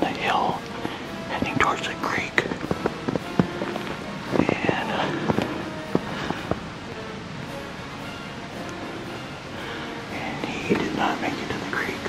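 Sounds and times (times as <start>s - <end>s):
faint steady hiss: 0.0s - 12.0s
footsteps crunching in snow: 0.7s - 7.0s.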